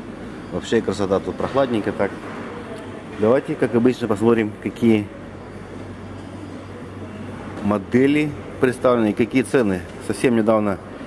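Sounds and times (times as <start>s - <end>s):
air conditioners humming: 0.0s - 11.0s.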